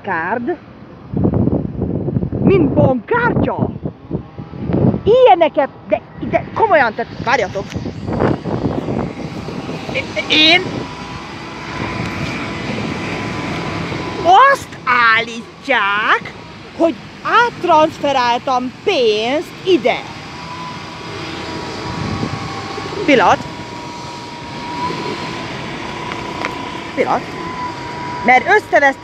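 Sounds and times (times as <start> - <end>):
faint steady whine: 0.0 - 29.0
low outdoor rumble: 0.0 - 29.0
traffic engine noise: 0.0 - 29.0.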